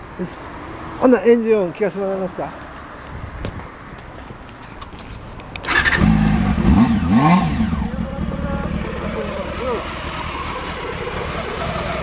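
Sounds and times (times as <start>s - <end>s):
motorcycle engine starting up: 5.6s - 12.0s.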